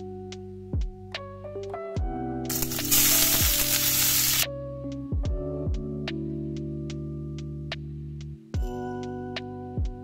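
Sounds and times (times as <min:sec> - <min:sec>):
background music with a beat: 0:00.0 - 0:10.0
food sizzling in a hot pan: 0:02.5 - 0:04.5.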